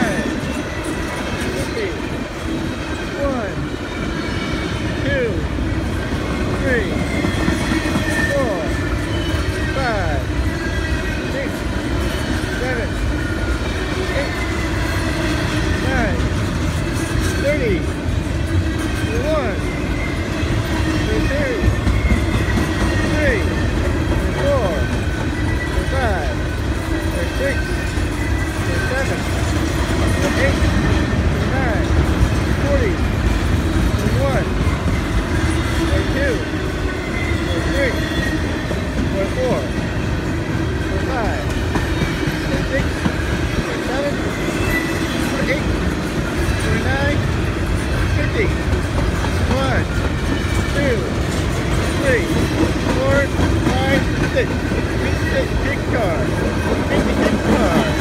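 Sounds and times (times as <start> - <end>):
steel wheels rumbling on rail: 0.0 - 58.0
wheels squealing: 5.8 - 58.0.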